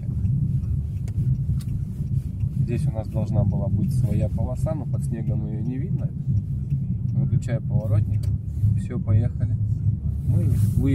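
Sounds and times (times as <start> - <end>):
faint clicks: 0.0 - 8.5
car engine and tyres rumbling: 0.0 - 10.9.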